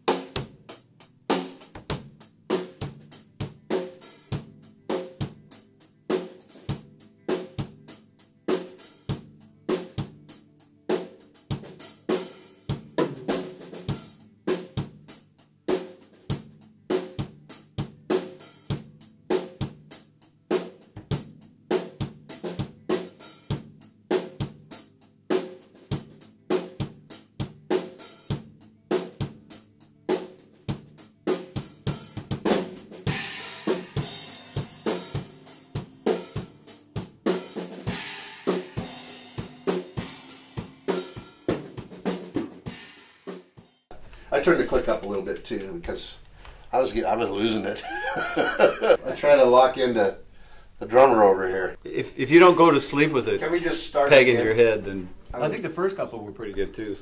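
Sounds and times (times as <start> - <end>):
rock band playing: 0.0 - 45.7, 46.5 - 56.9.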